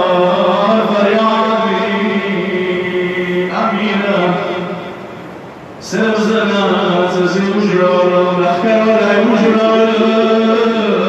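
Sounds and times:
man chanting: 0:00.0 - 0:04.9, 0:05.8 - 0:11.0.

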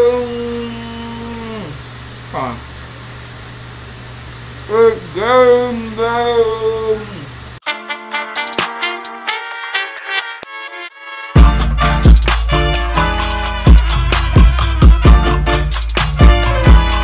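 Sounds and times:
man singing drawn-out notes: 0:00.0 - 0:02.6, 0:04.7 - 0:07.3
electronic music beat: 0:07.6 - 0:10.6, 0:11.4 - 0:17.0.

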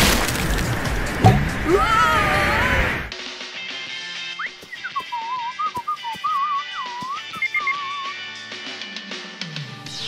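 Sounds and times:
whistled tune with vibrato: 0:04.4 - 0:08.3.

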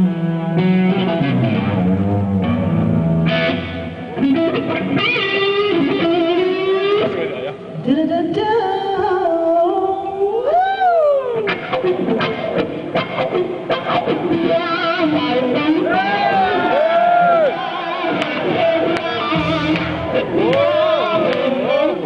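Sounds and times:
band accompaniment: 0:00.0 - 0:07.6, 0:11.5 - 0:22.0
electric guitar lead with bends: 0:00.0 - 0:22.0.

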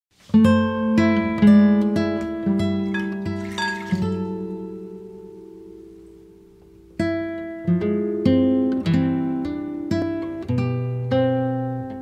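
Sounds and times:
guitar picking single notes: 0:00.4 - 0:12.0.

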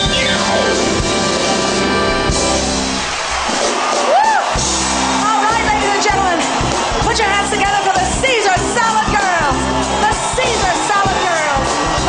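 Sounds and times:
drums: 0:00.0 - 0:12.0
live band playing boogie-woogie: 0:00.0 - 0:12.0.

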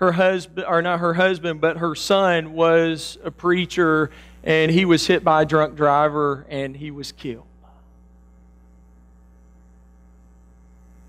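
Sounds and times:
low electrical mains hum: 0:00.0 - 0:11.0.

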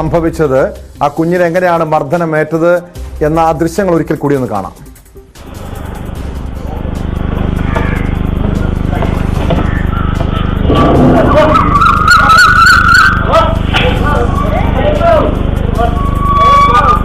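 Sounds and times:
people's voices: 0:06.6 - 0:17.0
high wavering voice: 0:09.6 - 0:15.0.

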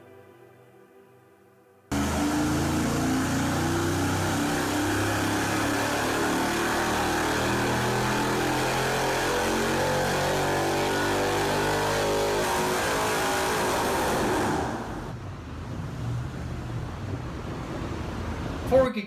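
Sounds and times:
engine running on a dyno: 0:01.9 - 0:18.7.

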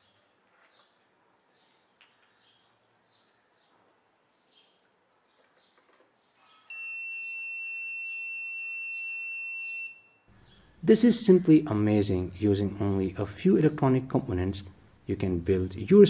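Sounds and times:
buzzer high-pitched tone: 0:06.7 - 0:10.2.

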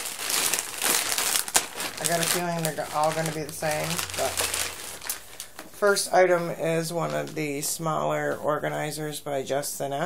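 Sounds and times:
plastic packaging crinkling: 0:00.0 - 0:06.1.

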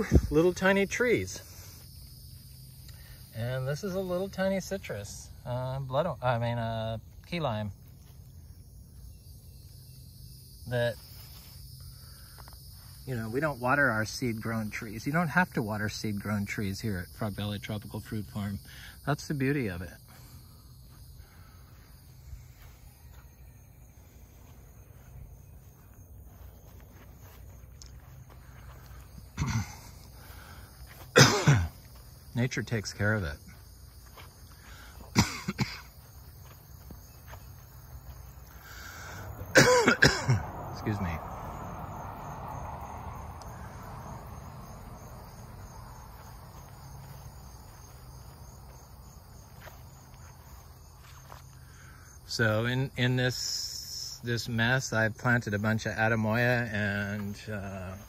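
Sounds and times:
soft footsteps on grass: 0:00.0 - 0:39.8, 0:43.3 - 0:58.0
insects trilling: 0:00.0 - 0:58.0.

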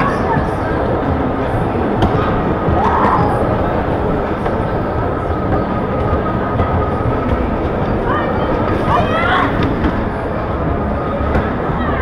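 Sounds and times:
bumper car rolling rumble: 0:00.0 - 0:12.0.

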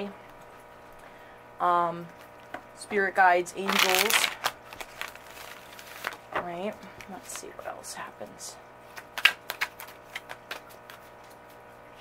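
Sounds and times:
cards being shuffled: 0:03.6 - 0:07.5, 0:08.9 - 0:11.6.

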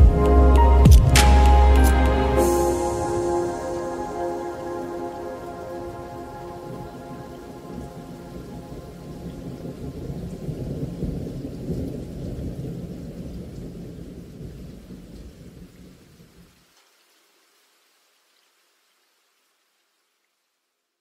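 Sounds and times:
soft music: 0:00.0 - 0:10.2
rain: 0:00.0 - 0:21.0
rolling thunder: 0:02.3 - 0:15.7.

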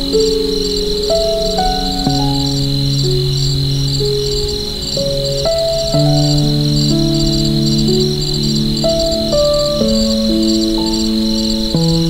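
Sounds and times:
crickets chirping: 0:00.0 - 0:12.0
soft piano music: 0:00.0 - 0:12.0.

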